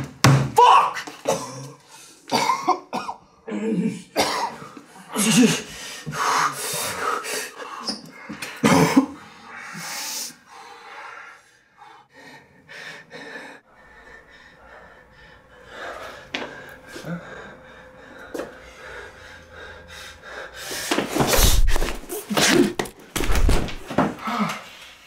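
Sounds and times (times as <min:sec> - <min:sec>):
man coughing and wheezing: 0:01.0 - 0:05.8, 0:08.3 - 0:09.4
ragged breathing: 0:04.6 - 0:23.0.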